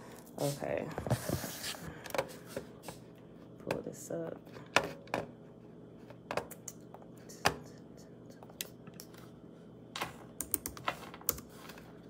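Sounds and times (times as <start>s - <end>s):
computer keyboard keystrokes: 10.4s - 11.4s.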